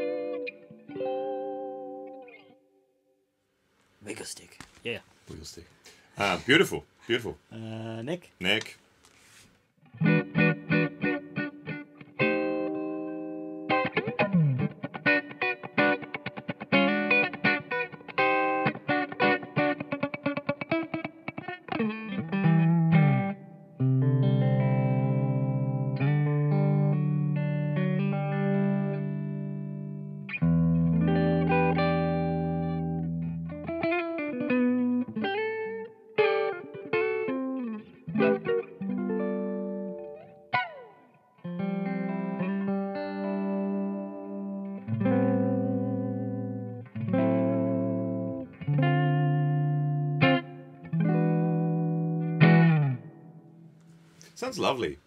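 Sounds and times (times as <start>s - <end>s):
clean electric guitar: 0.0s - 3.0s, 9.8s - 54.3s.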